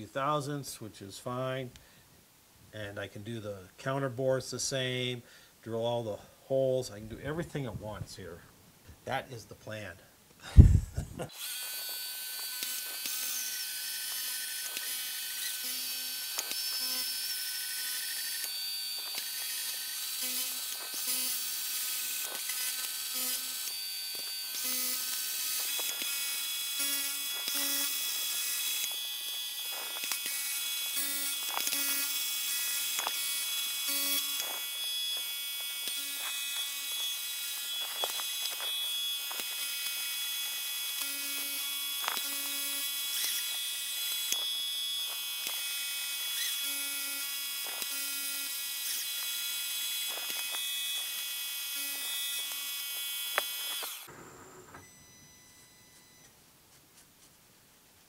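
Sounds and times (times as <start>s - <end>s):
milling machine motor whine: 11.4s - 56.3s
small clicks from cutting: 14.1s - 17.1s, 17.8s - 26.2s, 26.8s - 32.2s, 32.9s - 46.7s, 47.6s - 54.1s.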